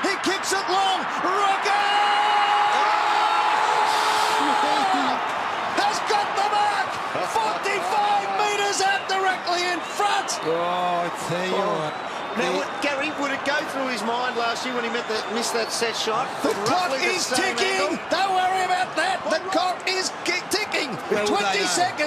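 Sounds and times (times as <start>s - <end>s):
stadium crowd cheering: 0.0s - 22.0s.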